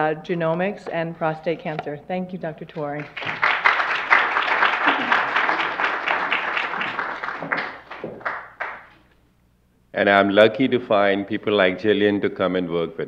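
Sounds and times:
audience applauding: 0:03.0 - 0:09.0.

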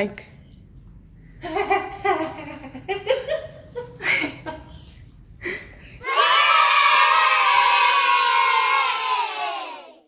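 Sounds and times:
children cheering: 0:06.0 - 0:10.0.

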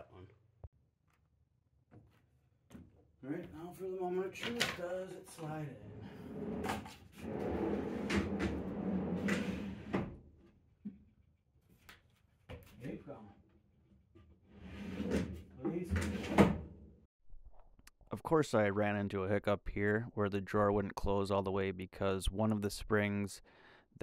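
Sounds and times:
drawer rolling on slide: 0:05.8 - 0:10.2, 0:14.5 - 0:16.7.

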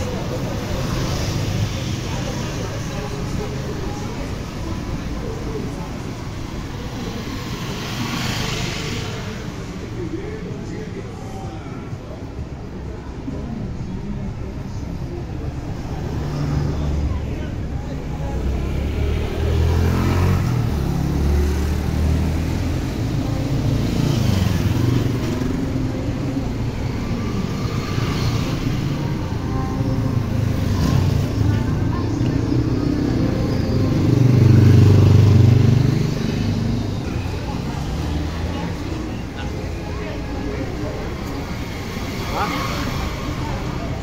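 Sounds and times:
background voices: 0:00.0 - 0:44.0
motorcycles and cars passing: 0:00.0 - 0:44.0.

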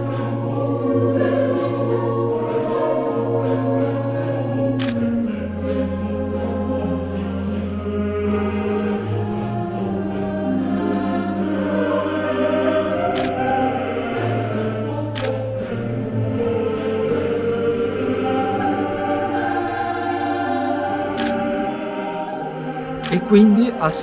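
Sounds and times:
choir singing long notes: 0:00.0 - 0:24.0.

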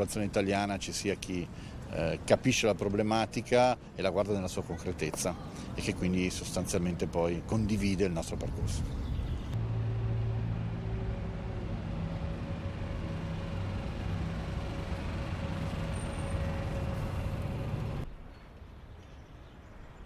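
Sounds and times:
bus engine humming: 0:00.0 - 0:18.0
street ambience: 0:00.0 - 0:20.0.

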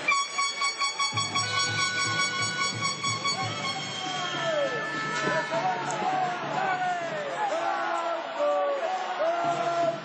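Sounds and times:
arena buzzer tone: 0:00.1 - 0:05.7.

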